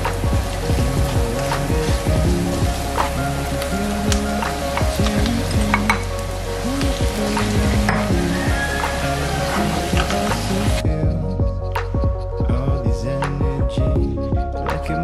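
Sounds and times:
aromatics sizzling in hot oil: 0.0 - 10.8
background music: 0.0 - 15.0.

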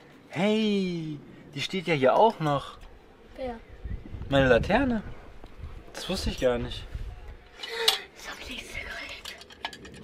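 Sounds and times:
metal lantern clinking and rattling: 7.5 - 10.0.

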